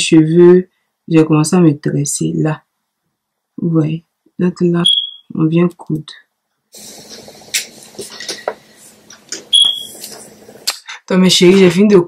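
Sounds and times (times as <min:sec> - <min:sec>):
alarm beep: 0:04.8 - 0:05.3, 0:09.5 - 0:10.0.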